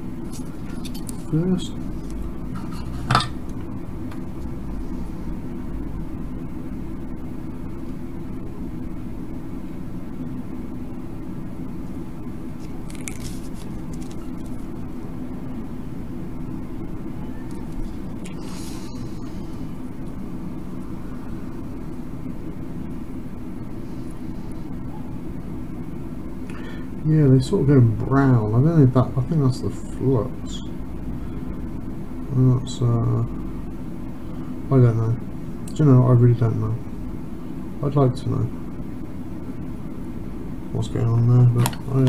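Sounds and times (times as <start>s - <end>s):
low fan or motor hum: 0.0s - 42.0s.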